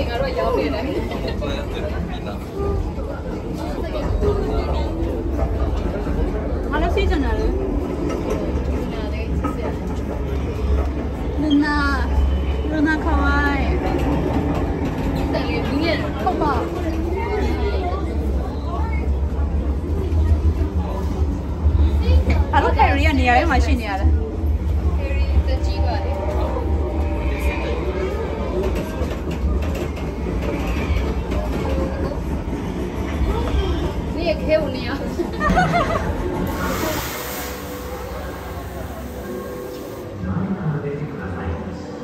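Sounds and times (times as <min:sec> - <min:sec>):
train rumble: 0:00.0 - 0:42.0.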